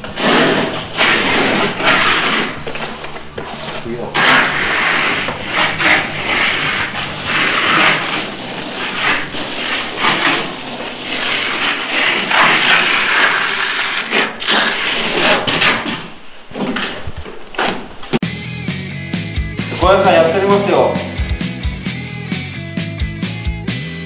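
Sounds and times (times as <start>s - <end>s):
trowel scraping plaster: 0.0s - 17.1s.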